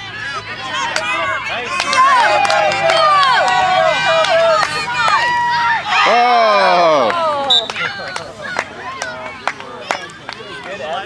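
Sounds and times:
children shouting: 0.0 - 10.9.

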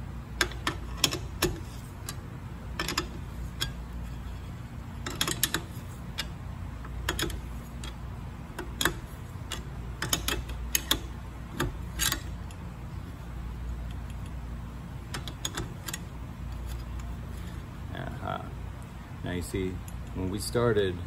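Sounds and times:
steady low hum: 0.0 - 21.0
wrench clicking on metal bolt: 0.4 - 2.2, 2.8 - 3.8, 5.0 - 6.4, 7.0 - 8.0, 8.6 - 12.6, 15.1 - 16.1.

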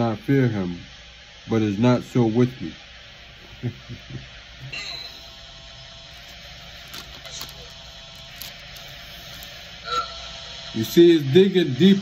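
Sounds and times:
faint steady hiss and hum: 0.0 - 12.0
man laughing softly: 3.4 - 5.1
thin pages rustling: 6.2 - 9.6.

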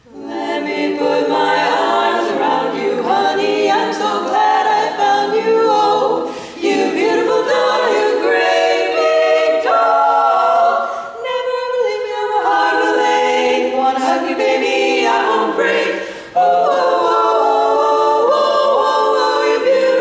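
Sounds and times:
women singing a cappella harmony: 0.0 - 20.0.

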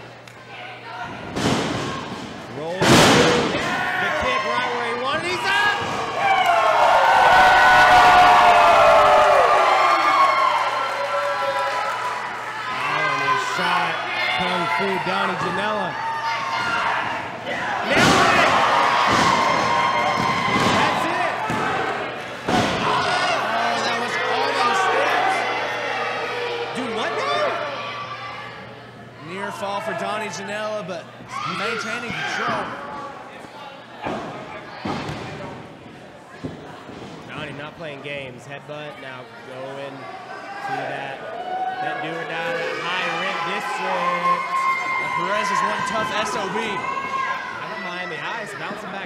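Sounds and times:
crowd shouting and yelling: 0.0 - 49.0.

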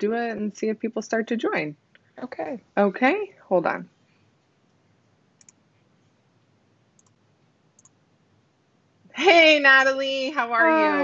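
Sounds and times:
computer mouse clicks: 5.4 - 5.6, 7.0 - 7.2, 7.8 - 8.0.

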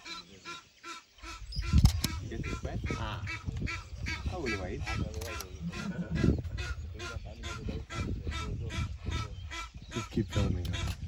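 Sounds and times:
ducks calling: 0.0 - 11.0.

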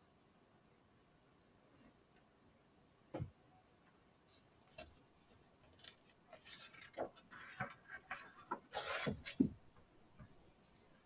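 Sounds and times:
taps and rustles: 5.7 - 10.4.

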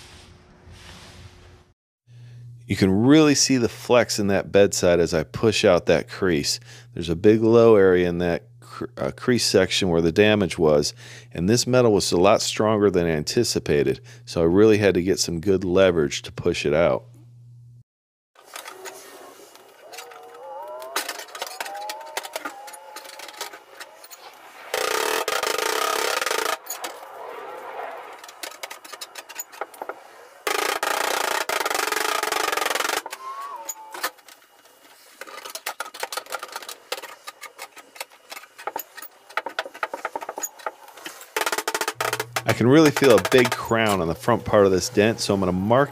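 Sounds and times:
sheet metal creaking and squeaking: 18.4 - 34.3, 35.2 - 45.1.

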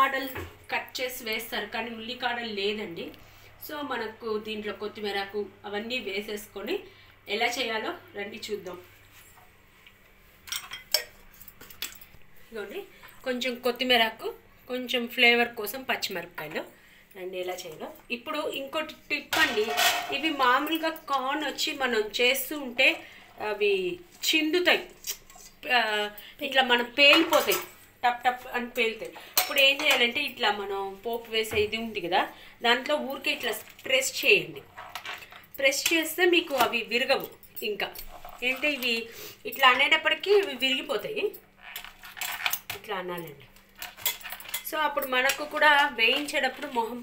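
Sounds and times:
colander clattering against metal plate: 19.3 - 20.6.

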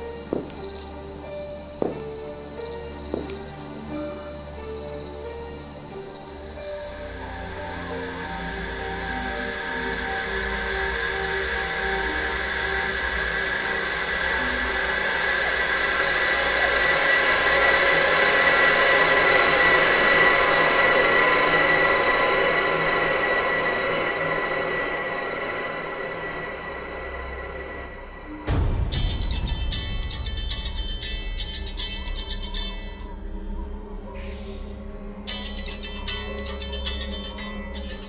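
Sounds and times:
eerie droning horror score: 0.0 - 38.0.

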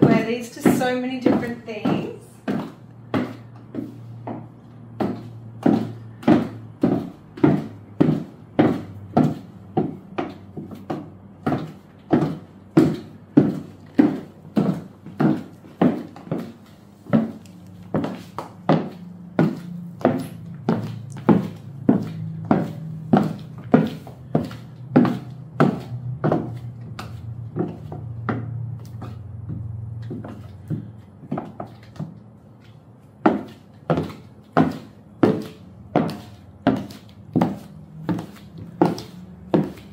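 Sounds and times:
high heels clacking on hardwood: 0.0 - 39.9.

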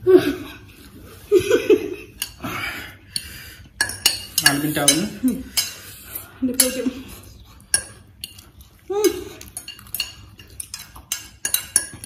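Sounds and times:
forks clinking on plates: 3.1 - 5.9, 6.5 - 7.0, 7.6 - 12.0.

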